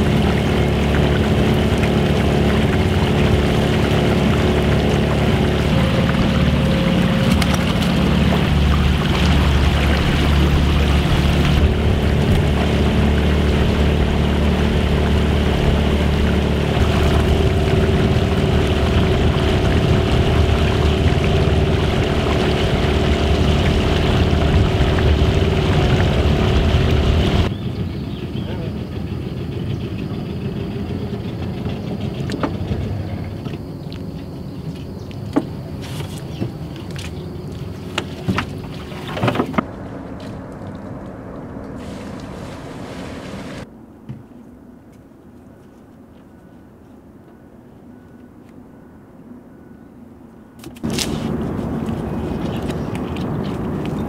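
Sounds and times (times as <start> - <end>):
outboard motor running: 0.0 - 43.7, 50.6 - 54.0.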